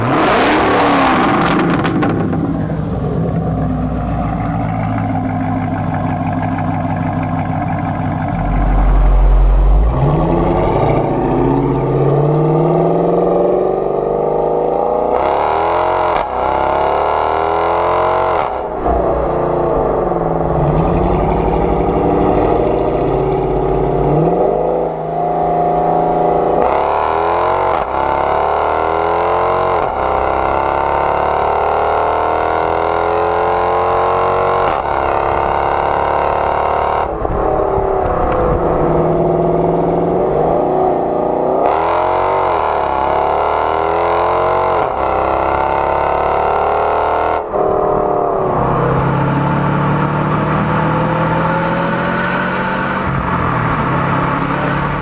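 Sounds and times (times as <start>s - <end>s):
car engine exhaust accelerating: 0.0s - 55.0s.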